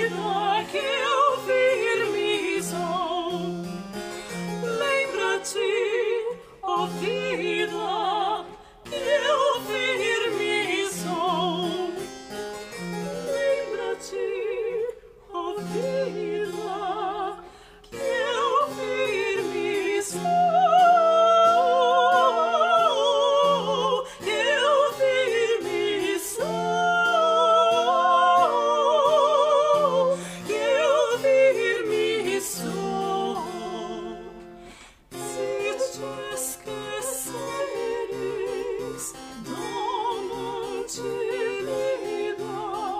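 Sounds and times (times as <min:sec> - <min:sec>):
two women singing a duet: 0:00.0 - 0:03.8, 0:04.4 - 0:12.1, 0:13.0 - 0:42.9
spinet: 0:00.0 - 0:42.9.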